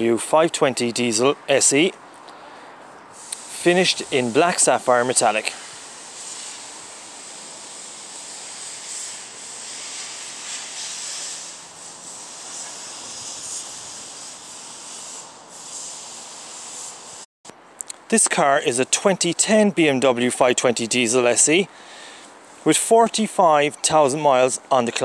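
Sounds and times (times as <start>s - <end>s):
steady outdoor hiss: 0.0s - 25.0s.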